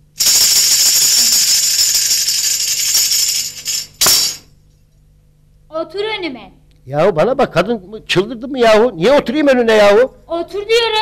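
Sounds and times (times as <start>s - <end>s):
tambourine jingling roll: 0.0s - 4.6s
tambourine struck sharply: 0.2s - 4.6s.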